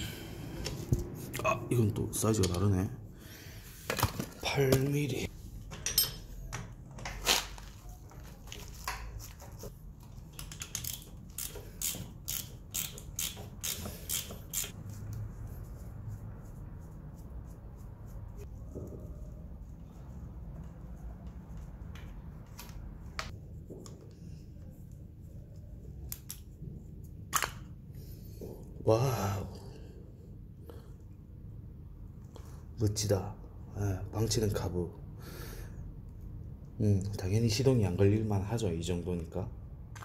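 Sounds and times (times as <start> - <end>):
ratchet wrench clicking: 10.3 - 14.8.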